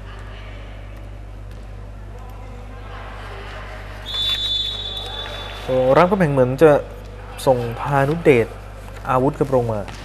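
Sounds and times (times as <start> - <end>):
referee's whistle long blast: 4.0 - 5.7.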